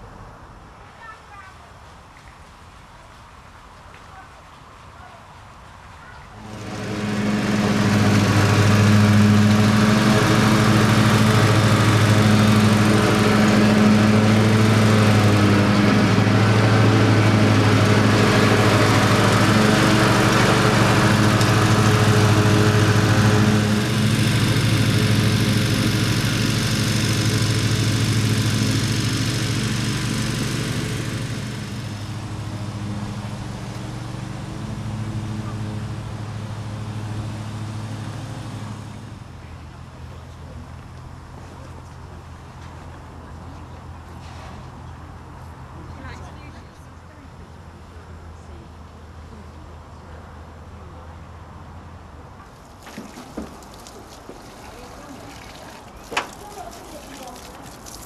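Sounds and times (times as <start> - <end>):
ride-on lawn mower engine: 6.4 - 49.8, 51.6 - 58.0.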